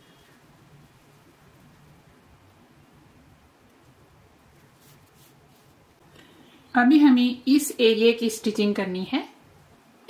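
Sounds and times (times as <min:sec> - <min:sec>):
soft rustles of knitted wool: 0:03.5 - 0:06.7.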